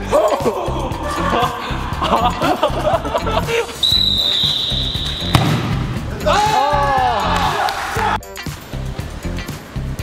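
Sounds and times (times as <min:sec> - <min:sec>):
background music with beat: 0:00.0 - 0:10.0
football kick thud: 0:05.2 - 0:06.1.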